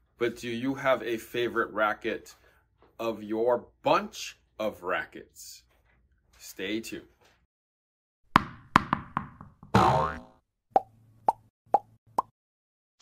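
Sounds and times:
cartoon plops falling in pitch: 9.6 - 12.3.

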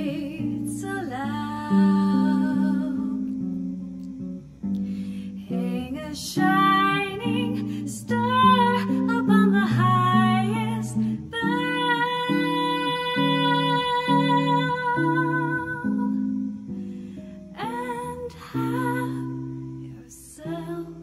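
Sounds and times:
woman singing a slow ballad: 0.0 - 3.9, 4.9 - 21.0
jazz guitar playing chords: 0.0 - 21.0.

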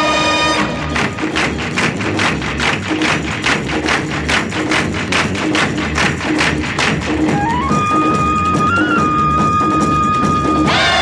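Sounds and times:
bass line: 0.0 - 11.0
fast percussion beat: 0.0 - 11.0.

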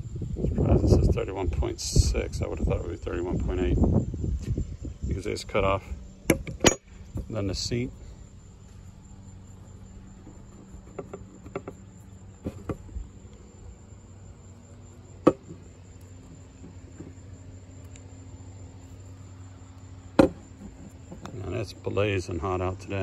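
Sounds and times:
crickets trilling: 0.0 - 23.0
low hum: 0.0 - 23.0
knocks on plywood board: 20.2 - 20.7.

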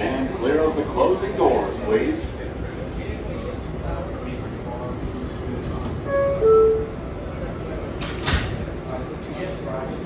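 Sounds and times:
stopped train humming: 5.4 - 7.9
train doors sliding shut: 8.0 - 8.7.

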